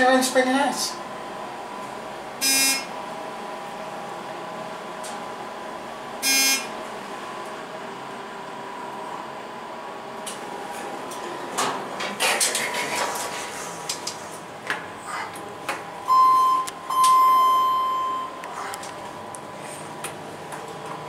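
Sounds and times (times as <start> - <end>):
elevator humming: 0.0 - 21.0
short electronic buzzes: 2.4 - 2.9, 6.2 - 6.7.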